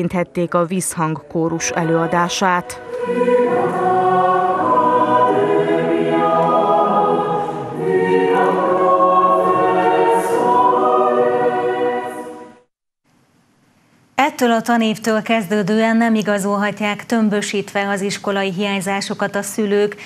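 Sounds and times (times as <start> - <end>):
mixed choir singing: 1.1 - 12.7.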